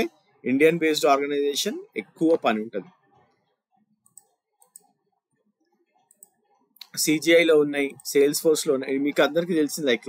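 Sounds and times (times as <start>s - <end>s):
scroll wheel ticks: 4.0s - 4.9s
computer mouse clicks: 4.0s - 5.0s, 5.6s - 7.0s.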